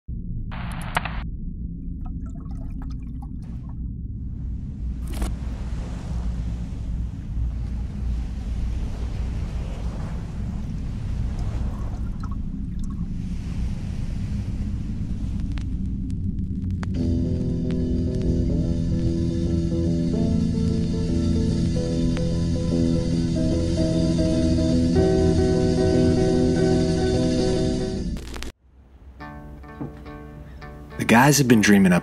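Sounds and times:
deep rumble: 0.1s - 29.7s
ocean surf: 4.3s - 15.9s, 28.7s - 32.0s.

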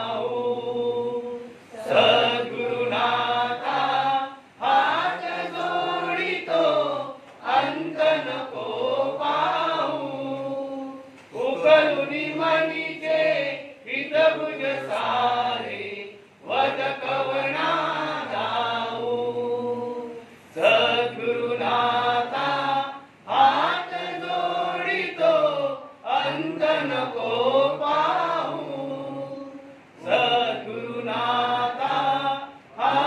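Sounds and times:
prayer chanting: 0.0s - 33.0s.

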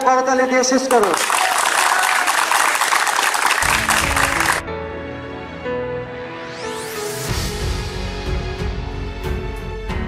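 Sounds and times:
group of people clapping: 0.7s - 4.6s
music with sustained notes: 3.6s - 10.0s.

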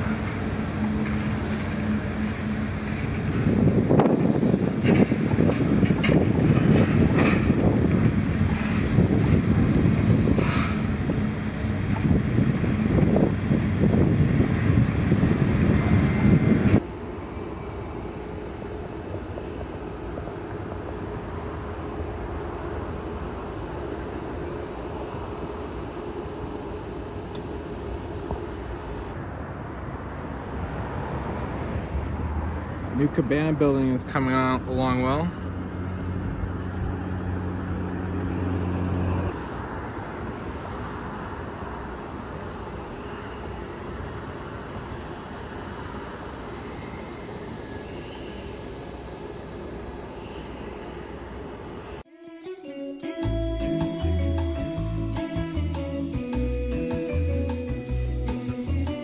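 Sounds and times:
wind buffeting microphone: 0.0s - 16.8s.

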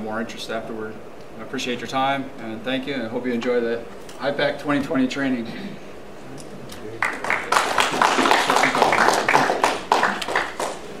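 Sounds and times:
small audience applauding: 6.9s - 11.0s.

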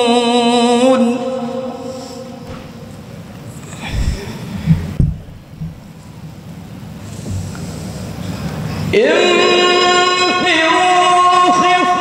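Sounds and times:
faint hall noise: 0.0s - 12.0s
muffled thumps: 3.8s - 5.9s.

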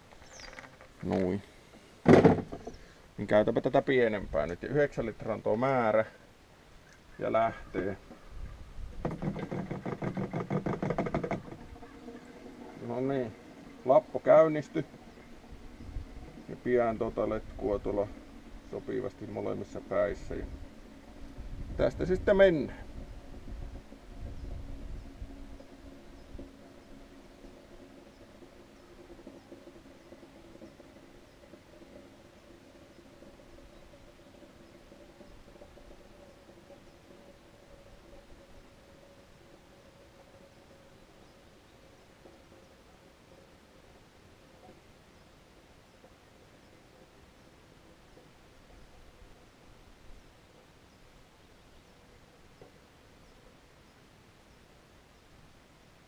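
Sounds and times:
faint steady sound: 0.0s - 56.0s
siphon knocking and rattling: 2.0s - 3.0s, 8.9s - 45.0s
low rumble: 11.6s - 34.2s.

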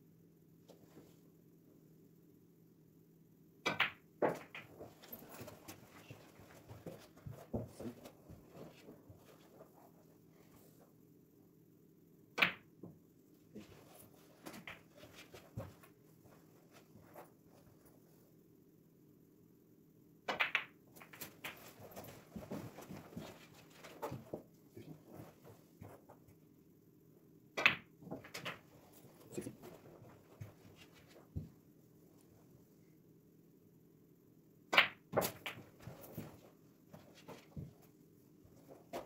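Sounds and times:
snooker balls clicking: 12.4s - 12.7s, 20.3s - 22.1s.

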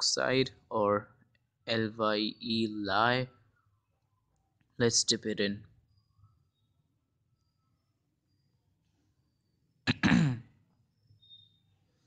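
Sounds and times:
man clearing his throat: 9.9s - 10.5s.

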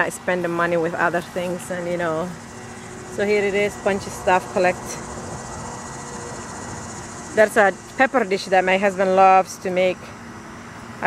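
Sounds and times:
low background rumble: 0.0s - 9.4s
insects chirring: 0.0s - 11.0s.

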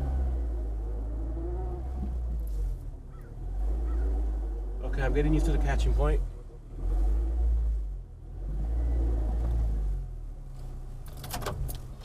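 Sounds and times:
car engine droning at low revs: 0.0s - 12.0s.

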